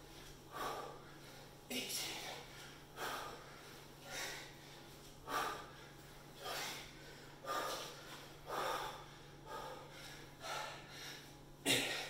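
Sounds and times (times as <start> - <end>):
man breathing hard: 0.0 - 12.0.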